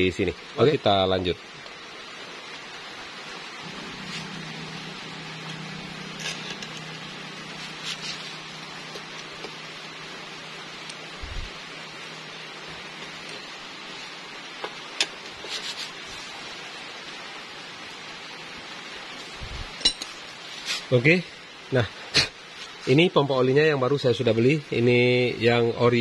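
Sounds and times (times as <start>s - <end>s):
steady hiss: 0.0s - 26.0s
low hum: 3.4s - 14.4s.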